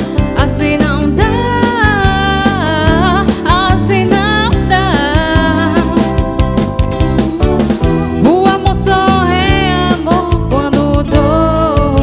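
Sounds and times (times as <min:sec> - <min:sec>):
electric and acoustic guitars: 0:00.0 - 0:12.0
keyboard: 0:00.0 - 0:12.0.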